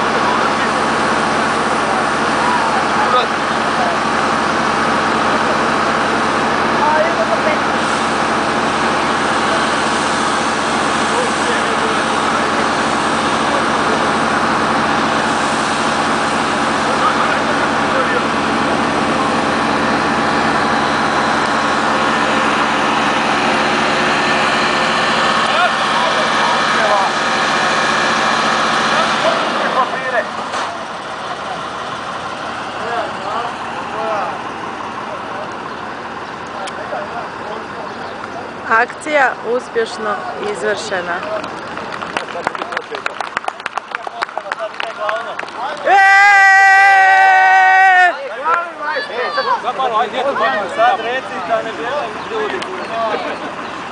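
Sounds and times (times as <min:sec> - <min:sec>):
pump engine running: 0:00.0 - 0:53.9.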